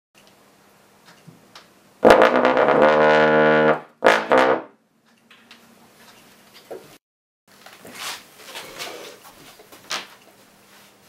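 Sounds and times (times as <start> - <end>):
bass trombone playing: 2.0 - 4.8.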